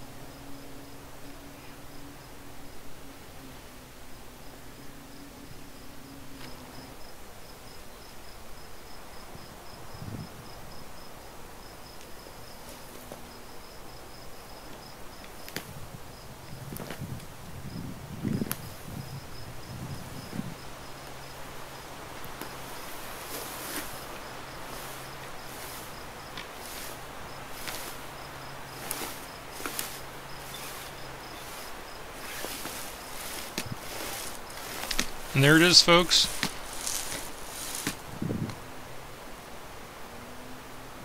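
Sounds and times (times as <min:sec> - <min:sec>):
insect chirping: 0:00.0 - 0:40.6
branches rustling and creaking: 0:16.5 - 0:39.2
roots cracking and snapping: 0:32.3 - 0:35.4, 0:36.3 - 0:38.0.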